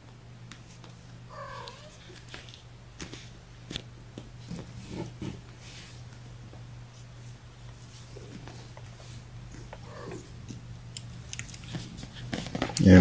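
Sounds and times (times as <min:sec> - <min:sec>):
kitten mewing: 0:01.3 - 0:02.2, 0:09.6 - 0:10.4.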